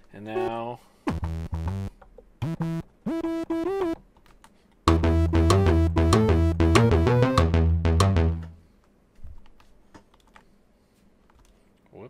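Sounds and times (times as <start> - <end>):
synthesizer pattern: 0.4 - 4.0, 4.9 - 8.5.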